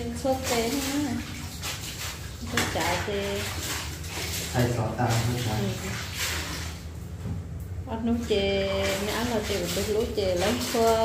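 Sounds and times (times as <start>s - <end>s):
wet clothes rubbed in water: 0.0s - 7.1s, 8.0s - 11.0s
water splashing and sloshing: 0.0s - 11.0s.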